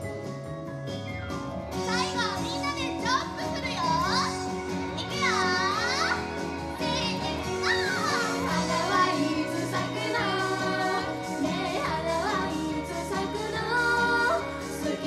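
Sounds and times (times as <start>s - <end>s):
pop music over speakers: 0.0s - 15.0s
high voices: 1.8s - 15.0s.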